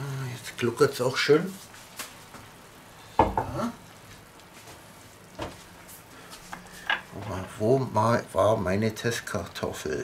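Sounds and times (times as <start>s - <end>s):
broth gurgling and sizzling: 0.0s - 10.0s.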